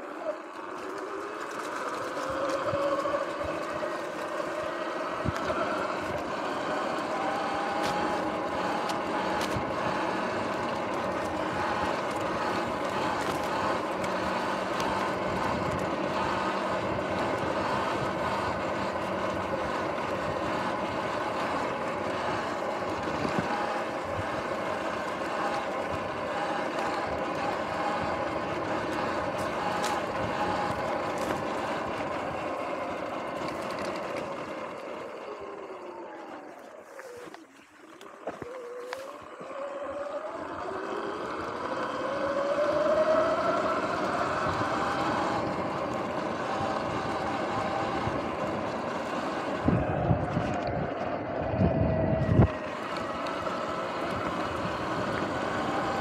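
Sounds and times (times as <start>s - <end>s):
electric motor whining: 0.0s - 56.0s
tyre and trail noise: 0.0s - 56.0s.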